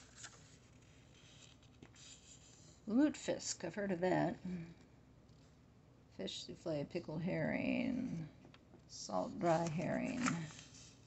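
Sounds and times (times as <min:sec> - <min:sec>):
book pages rustling: 0:00.0 - 0:02.8, 0:09.3 - 0:11.0
woman's voice: 0:02.9 - 0:04.8, 0:06.2 - 0:10.5.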